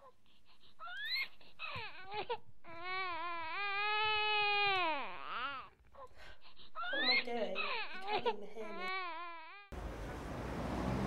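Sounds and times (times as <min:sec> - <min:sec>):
baby crying: 0:00.8 - 0:05.8, 0:06.8 - 0:09.8.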